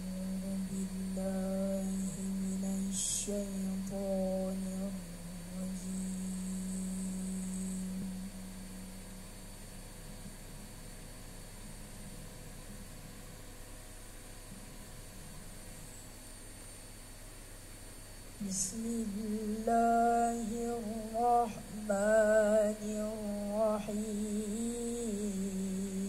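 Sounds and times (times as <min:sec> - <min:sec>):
boy reciting in long held note: 0:00.0 - 0:08.6, 0:18.4 - 0:26.0
electrical hum and hiss: 0:00.0 - 0:26.0.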